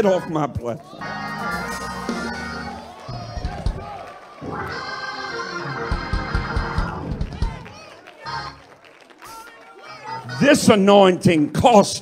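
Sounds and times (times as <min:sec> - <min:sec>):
organ playing sustained chords: 0:01.0 - 0:03.2, 0:04.2 - 0:07.1
low thumps: 0:03.2 - 0:04.0.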